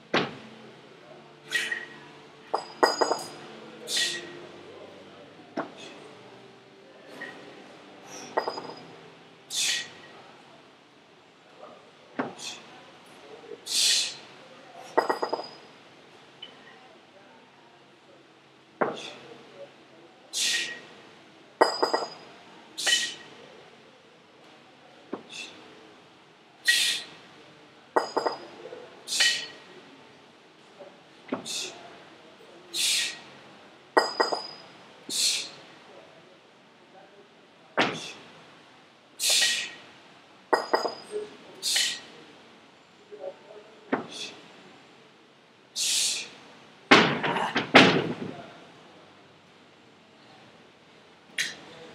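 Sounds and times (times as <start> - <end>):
sharp exhale: 1.5 - 2.0, 3.9 - 4.4, 8.0 - 8.4, 9.5 - 10.1, 13.7 - 14.2, 20.4 - 20.8, 22.8 - 23.3, 26.7 - 27.2, 29.1 - 29.5, 32.8 - 33.2, 39.2 - 39.8, 41.6 - 42.1, 45.8 - 46.4
kettlebell rattling clatter: 2.5 - 3.4, 34.0 - 34.6, 40.6 - 41.1.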